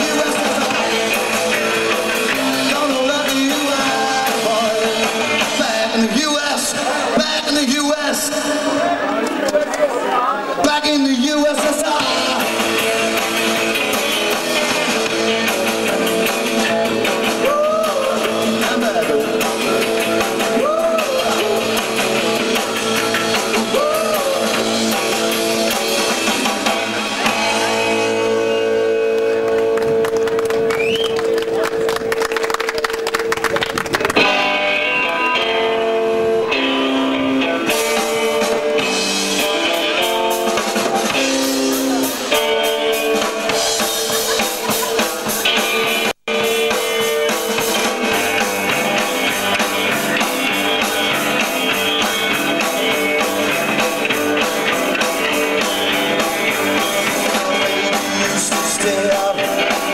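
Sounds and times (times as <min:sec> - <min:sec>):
drum kit: 0:00.0 - 0:08.8, 0:11.2 - 0:29.0, 0:36.6 - 0:59.9
bass guitar: 0:00.0 - 0:09.4, 0:10.6 - 0:59.9
electric guitar: 0:00.0 - 0:09.8, 0:10.6 - 0:59.9.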